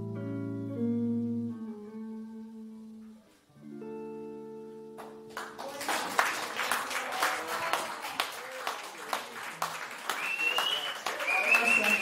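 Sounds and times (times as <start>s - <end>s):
guitar chord ringing: 0.0s - 5.5s
audience clapping: 4.9s - 12.0s
voices among applause: 5.0s - 12.0s.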